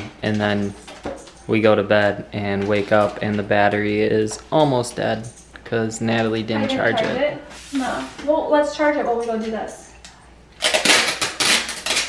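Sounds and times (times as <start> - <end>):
packing tape ripping off roll: 10.6 - 12.0.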